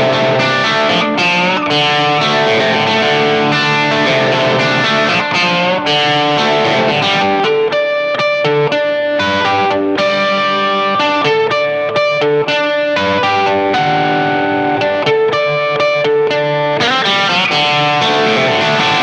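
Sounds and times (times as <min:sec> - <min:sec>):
electric guitar riff: 0:00.0 - 0:19.0.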